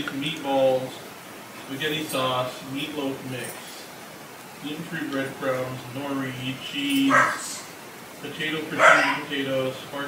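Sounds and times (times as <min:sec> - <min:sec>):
muffled talking: 0:04.6 - 0:10.0
dog barking: 0:07.1 - 0:07.7, 0:08.8 - 0:09.3.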